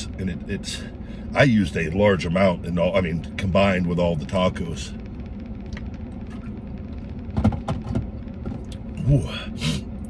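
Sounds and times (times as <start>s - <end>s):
low rumble inside vehicle cab: 0.0s - 10.0s.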